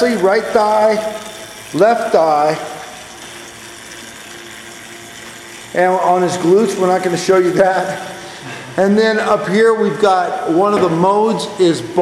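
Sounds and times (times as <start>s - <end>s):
spin bike flywheel whirring: 0.0s - 8.6s.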